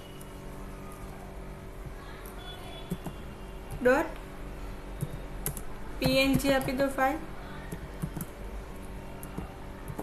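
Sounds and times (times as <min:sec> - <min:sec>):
faint room hum: 0:00.0 - 0:10.0
computer keyboard clicks: 0:02.9 - 0:03.8, 0:05.0 - 0:07.0, 0:07.6 - 0:08.4, 0:09.2 - 0:10.0.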